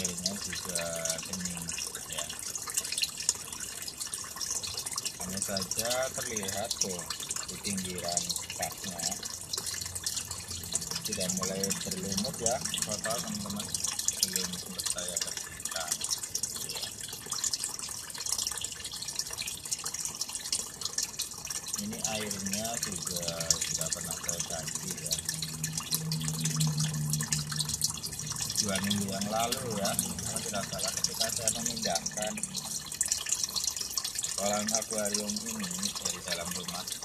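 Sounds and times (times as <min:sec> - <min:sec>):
water trickling and splashing: 0:00.0 - 0:37.0.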